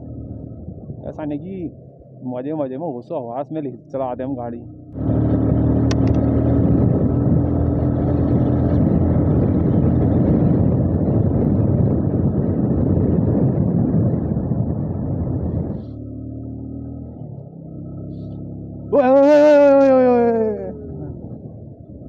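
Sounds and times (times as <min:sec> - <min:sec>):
motorcycle engine running: 0:00.0 - 0:02.3, 0:03.7 - 0:22.0
wind rushing on microphone: 0:00.6 - 0:01.7, 0:05.0 - 0:16.0, 0:18.9 - 0:22.0.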